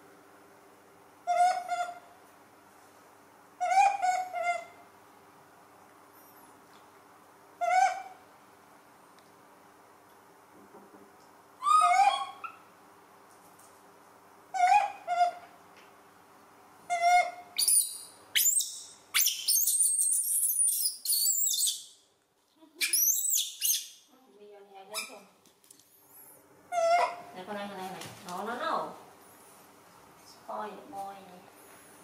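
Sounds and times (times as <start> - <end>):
monkey shrill squeals: 11.6 - 12.6, 16.9 - 21.9, 22.8 - 24.0.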